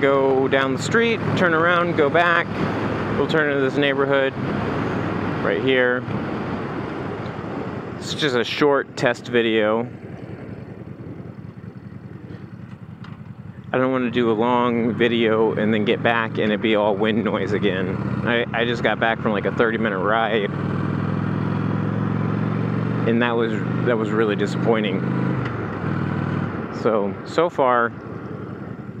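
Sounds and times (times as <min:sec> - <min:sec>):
motorcycle engine at low revs: 0:00.0 - 0:29.0.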